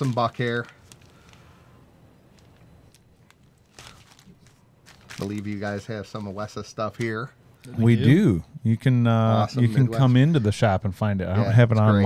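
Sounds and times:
plastic bag crinkling: 0.0 - 1.6, 2.3 - 7.3.

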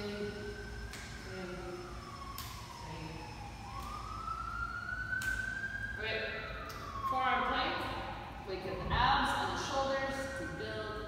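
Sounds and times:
distant siren wailing: 0.0 - 11.0.

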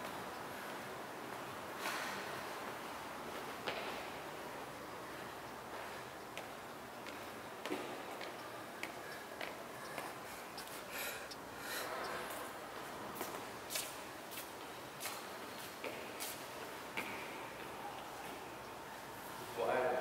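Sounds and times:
faint room noise: 0.0 - 20.0.

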